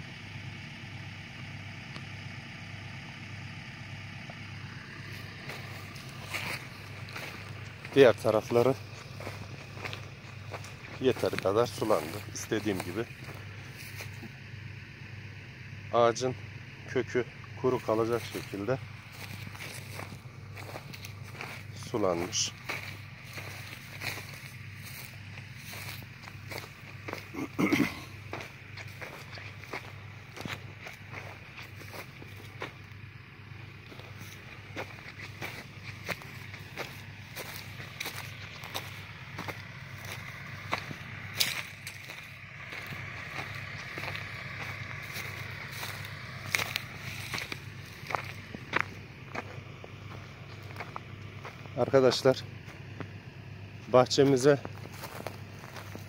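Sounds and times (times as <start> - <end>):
steady low hum: 0.0 - 56.0
footsteps on dry soil: 1.6 - 56.0.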